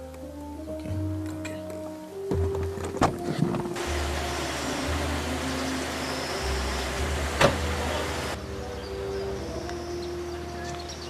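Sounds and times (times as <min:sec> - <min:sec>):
soft background music: 0:00.0 - 0:11.0
car running with low hum: 0:03.4 - 0:11.0.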